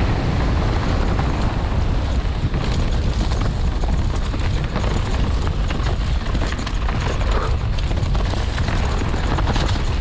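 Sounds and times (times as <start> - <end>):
tyres rolling on dirt: 0.0 - 10.0
wind rumble on microphone: 0.0 - 10.0
bike clicks and clatters: 0.2 - 10.0.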